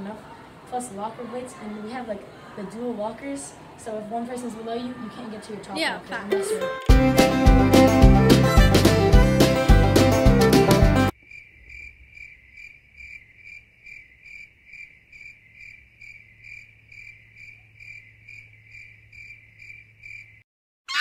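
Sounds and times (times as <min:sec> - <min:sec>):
cricket chirping: 0:11.1 - 0:20.4.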